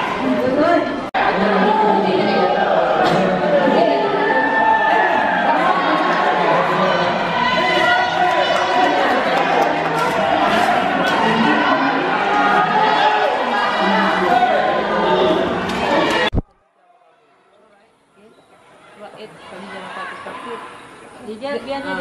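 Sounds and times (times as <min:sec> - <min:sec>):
crowd chattering in a hall: 0:00.0 - 0:22.0.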